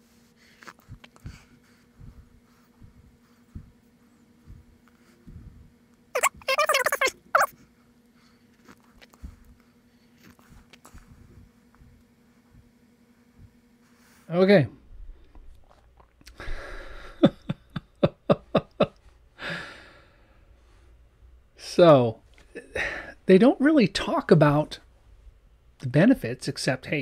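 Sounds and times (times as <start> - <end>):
man laughing high-pitched: 6.2 - 7.5, 17.2 - 18.9
man's breathy sigh: 16.4 - 17.2.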